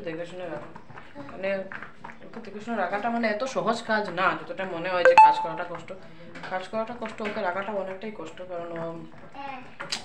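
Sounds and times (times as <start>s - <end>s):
brief ringing tone: 5.1s - 5.6s.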